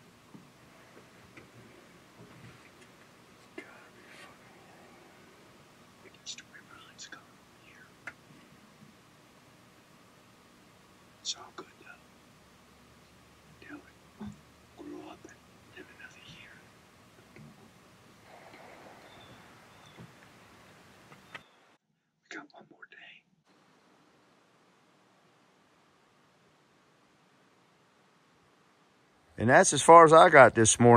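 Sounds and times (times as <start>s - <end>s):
faint hiss: 0.0s - 30.9s
man whispering: 3.4s - 5.4s, 6.0s - 8.0s, 11.2s - 12.1s, 13.6s - 16.7s, 22.3s - 23.3s.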